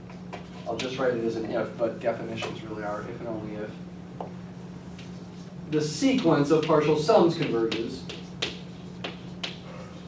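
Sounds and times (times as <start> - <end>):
steady low hum: 0.0 - 10.0
chalk tapping on blackboard: 6.5 - 9.6.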